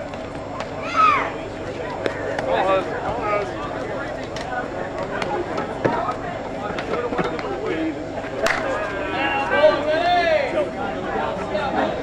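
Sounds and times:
people calling out: 0.8s - 1.5s, 8.4s - 12.0s.

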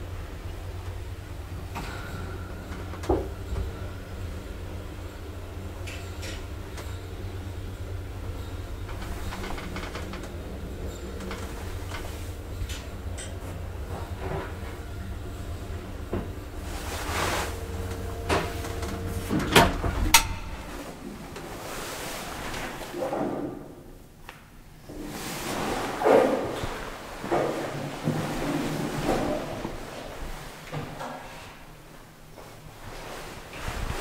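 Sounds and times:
elevator car clunking: 0.0s - 21.7s
elevator motor humming: 0.0s - 22.3s
elevator door rattling open: 1.4s - 16.8s, 17.6s - 21.4s
clicks and knocks: 17.9s - 21.0s.

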